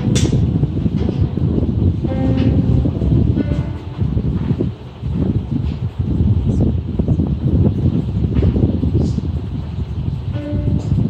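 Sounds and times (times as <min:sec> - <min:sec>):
acoustic guitar plucked notes: 0:00.0 - 0:04.6
heavy low rumble: 0:00.0 - 0:11.0.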